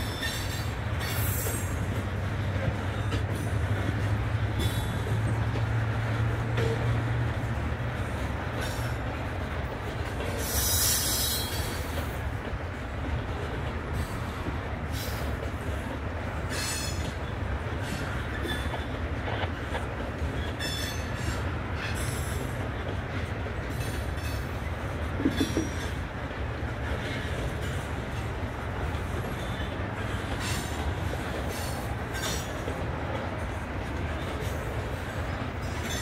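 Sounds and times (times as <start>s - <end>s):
train wheels squealing: 0.0s - 1.9s, 10.3s - 12.0s, 16.5s - 19.0s, 20.2s - 22.6s, 23.7s - 26.0s, 29.2s - 30.9s, 31.5s - 32.7s, 34.4s - 36.0s
freight train rumbling past: 0.0s - 36.0s.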